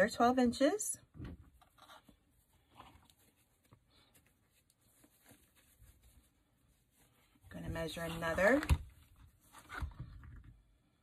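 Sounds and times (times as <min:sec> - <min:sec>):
ribbon rustling and crinkling: 0:01.5 - 0:10.3.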